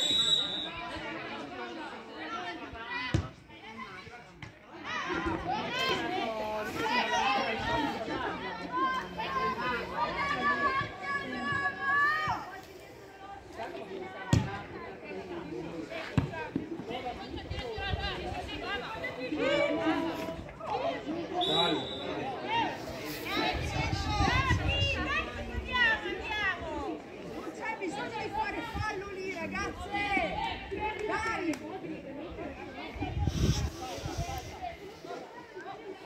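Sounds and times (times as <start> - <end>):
voices calling out and chattering: 0.0 - 36.0.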